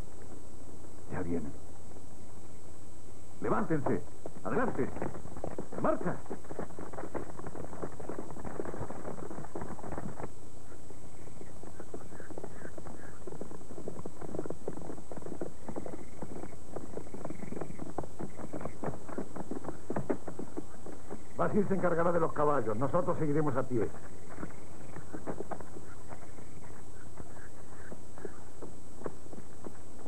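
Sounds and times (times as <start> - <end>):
horse hooves clopping on dirt: 0.0 - 30.0.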